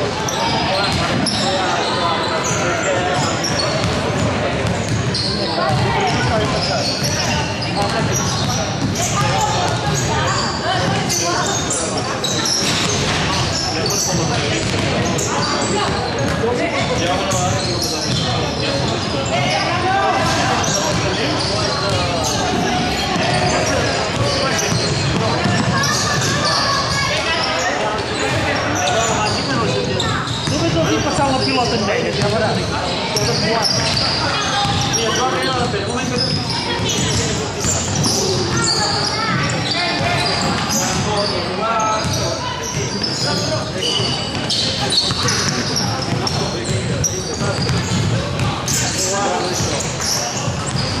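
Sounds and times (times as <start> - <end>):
players' voices calling out: 0.0 - 51.0
basketball bouncing on wooden court: 14.6 - 15.2, 20.9 - 26.4, 47.0 - 48.5
basketball bouncing on wooden floor: 47.6 - 48.5.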